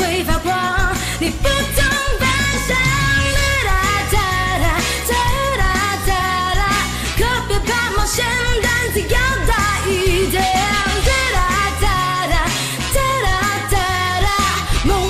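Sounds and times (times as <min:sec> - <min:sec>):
pop backing track with bass: 0:00.0 - 0:15.0
steady drum beat: 0:00.0 - 0:15.0.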